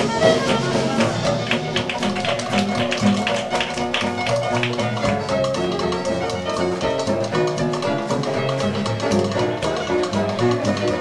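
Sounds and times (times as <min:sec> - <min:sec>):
jazz band playing live: 0:00.0 - 0:11.0.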